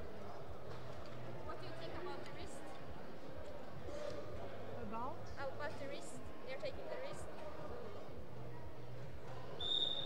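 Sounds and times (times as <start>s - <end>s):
whistle blast: 9.6s - 10.0s.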